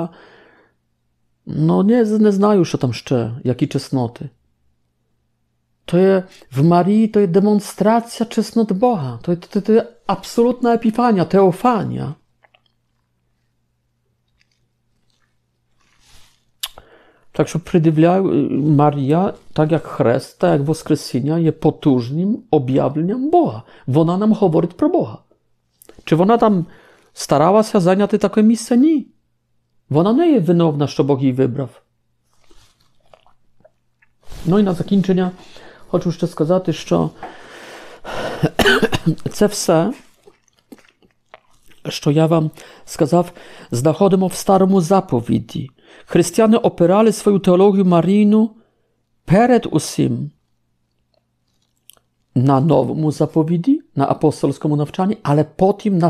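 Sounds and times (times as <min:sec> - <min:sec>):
faint breath: 0:00.1 - 0:00.8, 0:15.8 - 0:17.3, 0:35.4 - 0:35.9, 0:37.2 - 0:38.4, 0:42.6 - 0:43.7
man breathing in softly: 0:00.1 - 0:00.8, 0:37.2 - 0:38.4
mouth click: 0:16.6 - 0:16.9
man coughing: 0:38.2 - 0:39.3.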